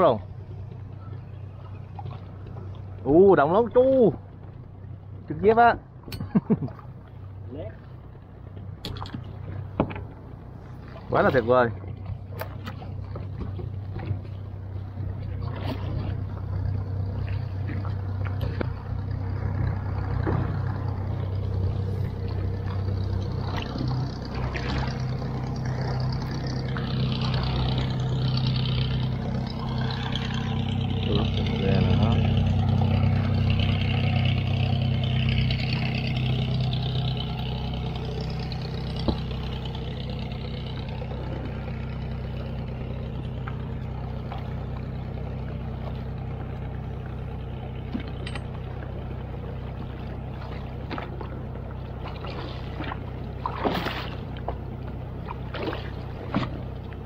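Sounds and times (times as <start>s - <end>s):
boat engine running: 0.0s - 57.0s
water splashing along hull: 0.0s - 57.0s.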